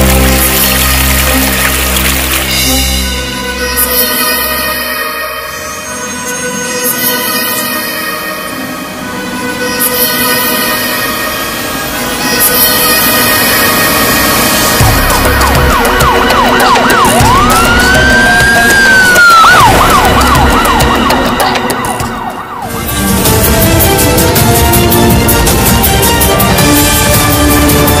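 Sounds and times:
emergency vehicle siren: 0.0 - 28.0
film score sustained tones: 0.0 - 28.0.

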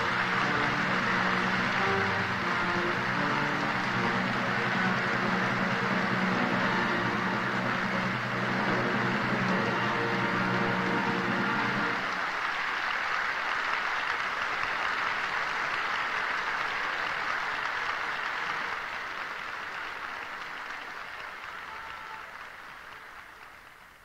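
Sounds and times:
audience applauding: 0.0 - 24.0.

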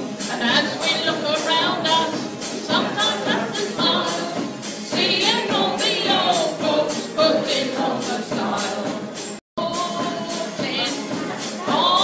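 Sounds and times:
guitar: 0.0 - 12.0
person singing with vibrato: 0.0 - 12.0
steady percussion beat: 0.0 - 12.0.

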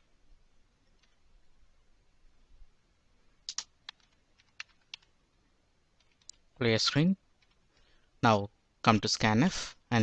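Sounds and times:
keyboard keystrokes: 3.5 - 5.1, 6.0 - 6.4, 7.4 - 7.6.

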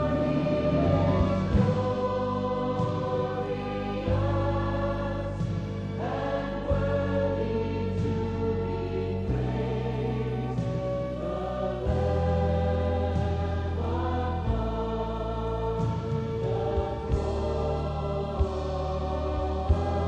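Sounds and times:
band accompaniment: 0.0 - 7.0
choir singing: 0.0 - 20.0.

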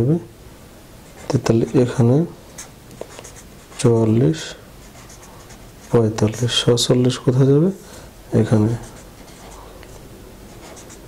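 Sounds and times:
marker writing on paper: 1.1 - 4.1, 4.8 - 6.4, 8.6 - 11.0.

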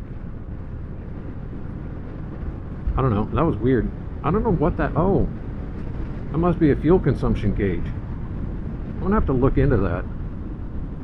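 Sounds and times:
wind rushing on microphone: 0.0 - 11.0.

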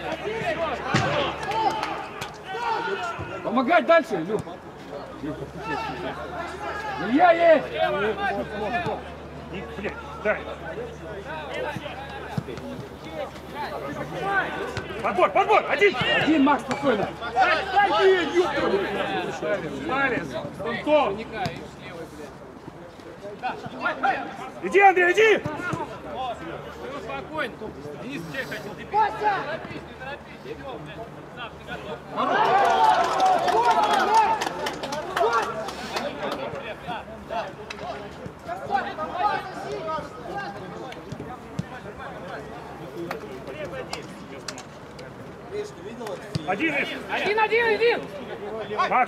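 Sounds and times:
men shouting: 0.0 - 3.7, 17.2 - 19.4, 32.1 - 34.4.

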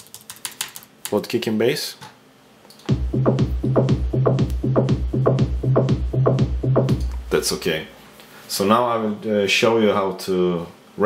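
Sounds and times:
electronic kick drum: 2.9 - 7.4
synth bass notes: 2.9 - 7.6.

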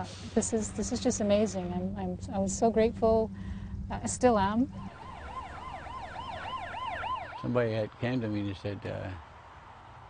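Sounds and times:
siren in fast yelp: 4.7 - 7.6.

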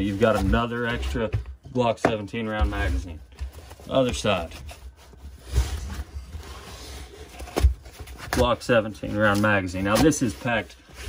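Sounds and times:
fabric rustling and scraping: 0.0 - 1.3, 2.4 - 11.0.

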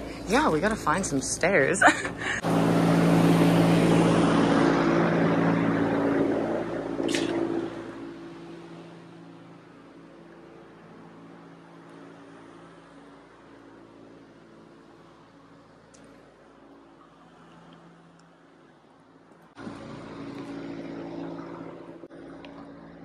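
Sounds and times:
large fan running: 0.0 - 23.0.

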